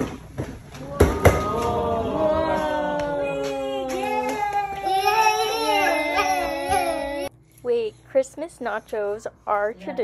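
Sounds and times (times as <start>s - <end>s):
high child-like voices singing: 2.6s - 7.3s.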